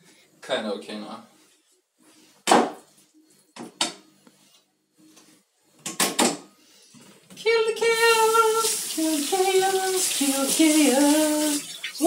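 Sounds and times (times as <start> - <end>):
kitchen tap running: 8.0 - 12.0.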